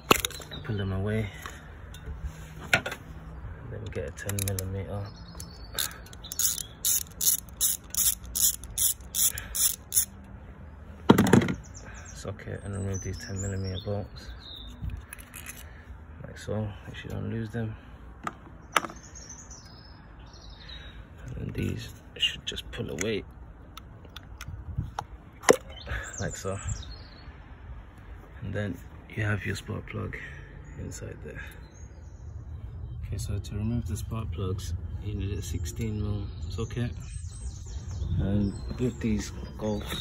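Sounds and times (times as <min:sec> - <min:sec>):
ratchet wrench clicking: 0:05.4 - 0:10.3.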